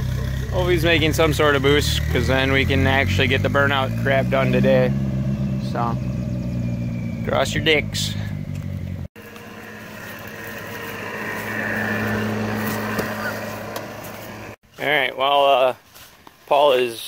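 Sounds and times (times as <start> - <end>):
car engine humming: 0.0 - 14.6.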